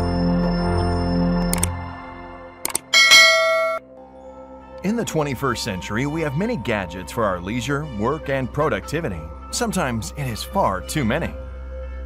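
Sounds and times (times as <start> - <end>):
click sound effects: 2.6 - 3.8
bright bell ding: 3.0 - 3.8.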